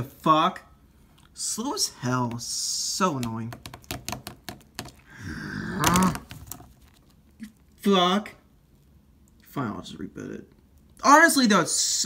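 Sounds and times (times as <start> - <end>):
fingers tapping phone screen: 3.2 - 5.1.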